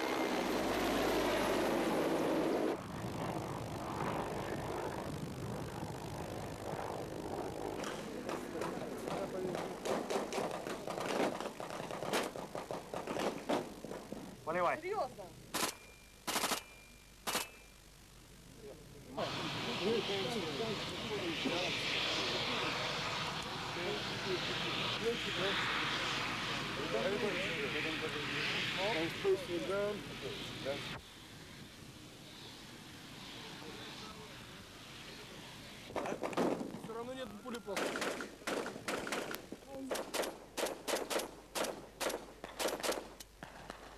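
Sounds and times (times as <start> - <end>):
loud steady rushing noise: 0.0 - 13.8, 19.1 - 36.0
rifle gunfire: 15.5 - 17.5, 37.8 - 43.2
gunshots in short bursts: 15.5 - 17.6, 37.7 - 43.9
men talking: 18.6 - 22.0, 23.7 - 26.0, 26.7 - 31.0, 36.8 - 38.0.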